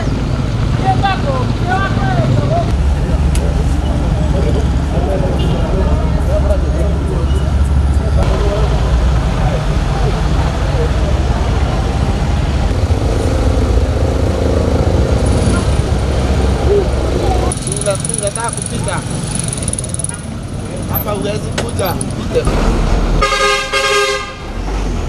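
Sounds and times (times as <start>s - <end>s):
people talking: 0.0s - 12.8s, 15.3s - 22.7s
passing road traffic: 0.0s - 25.0s
steady low rumble: 0.1s - 17.8s.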